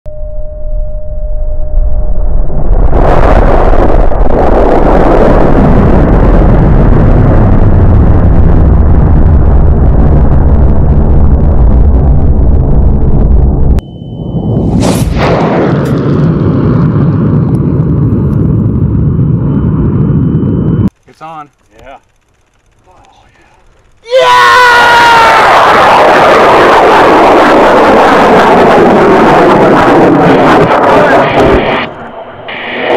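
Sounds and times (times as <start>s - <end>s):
rocket motor roaring: 2.2s - 32.9s
sharp crack: 14.8s - 18.5s.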